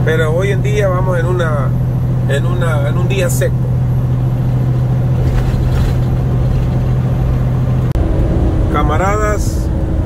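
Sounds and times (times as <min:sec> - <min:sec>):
road noise: 0:00.0 - 0:10.0
truck engine drone: 0:00.0 - 0:10.0.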